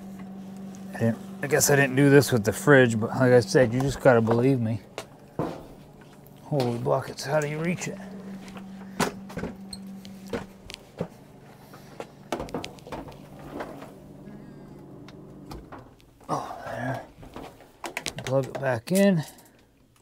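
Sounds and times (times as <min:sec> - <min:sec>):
freezer electrical hum: 0:00.0 - 0:20.0
man grunting: 0:16.3 - 0:17.1.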